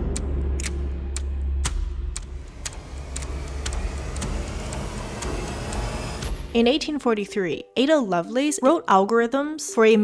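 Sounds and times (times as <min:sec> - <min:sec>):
sharp ticks: 0:00.0 - 0:06.3
steady low rumble: 0:00.0 - 0:06.8.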